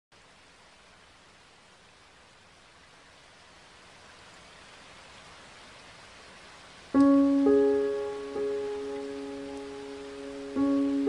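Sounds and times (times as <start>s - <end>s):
rain falling on pavement: 0.1s - 11.0s
piano chord ringing: 7.0s - 11.0s.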